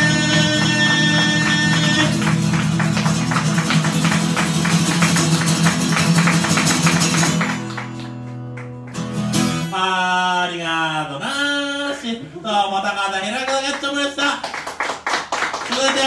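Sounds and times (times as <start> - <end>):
acoustic guitar strummed fast: 0.0 - 9.8.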